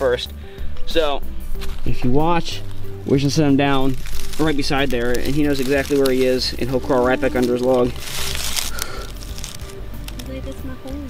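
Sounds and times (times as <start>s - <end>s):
dry leaves rustling and crackling: 0.8s - 11.0s.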